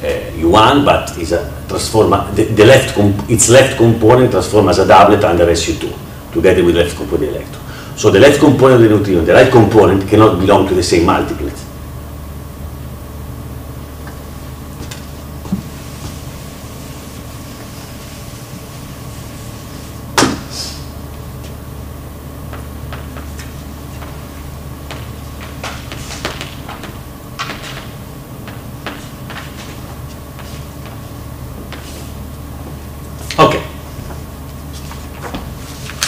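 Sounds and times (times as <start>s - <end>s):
room hum: 0.0s - 36.0s.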